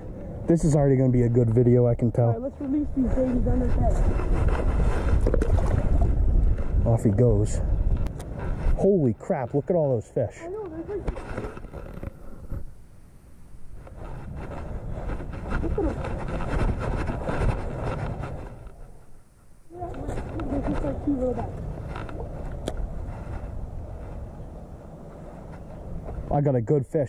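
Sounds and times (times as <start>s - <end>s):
wind rumbling on microphone: 0.0s - 26.8s
handling and walking noise: 10.4s - 12.8s, 13.6s - 26.3s.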